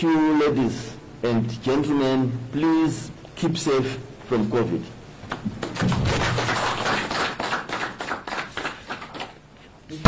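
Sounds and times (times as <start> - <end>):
audience applauding: 5.6 - 9.4.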